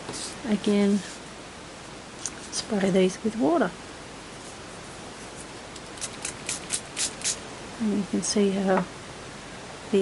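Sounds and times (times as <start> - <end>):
spray bottle squirting water: 5.8 - 7.4.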